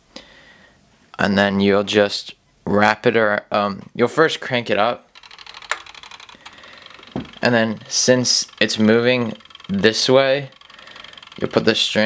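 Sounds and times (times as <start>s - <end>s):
kitchen timer ratcheting clicks: 5.1s - 12.0s.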